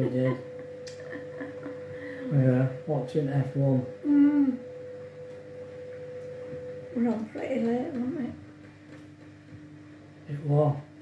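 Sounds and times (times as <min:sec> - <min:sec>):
washing machine humming: 0:00.0 - 0:11.0.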